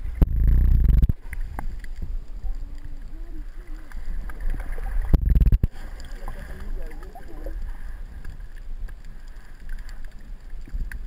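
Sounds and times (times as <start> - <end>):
underwater low rumble: 0.0 - 11.0
muffled underwater thump: 5.0 - 5.8.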